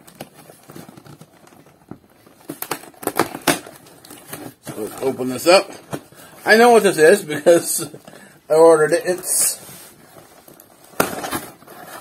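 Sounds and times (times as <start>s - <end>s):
plastic packaging snapping: 0.0s - 5.2s, 10.5s - 12.0s
plastic packaging crackling: 0.0s - 12.0s.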